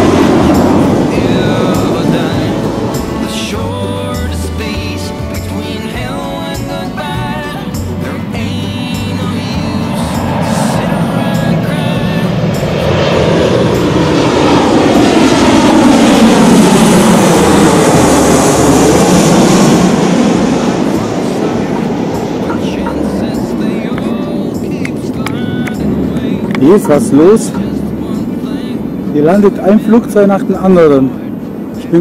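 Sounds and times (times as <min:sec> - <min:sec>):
jet airliner passing overhead: 0:00.0 - 0:32.0.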